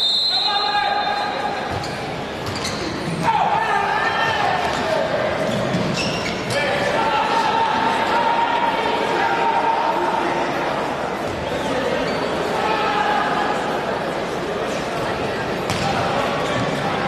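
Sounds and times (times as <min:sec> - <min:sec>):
referee's whistle: 0:00.0 - 0:01.5
crowd noise echoing in hall: 0:00.0 - 0:17.0.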